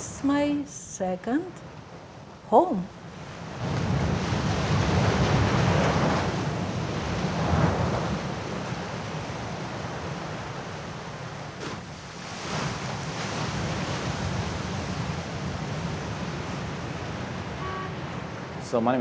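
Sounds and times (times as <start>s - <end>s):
ocean surf breaking: 3.0s - 19.0s.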